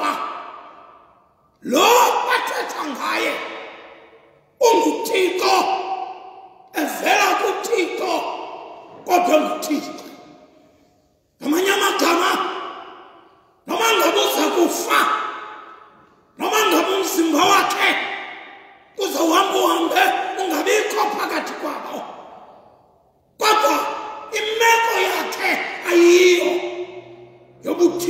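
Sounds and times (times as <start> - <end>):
man preaching in echoing hall: 0.0 - 28.0.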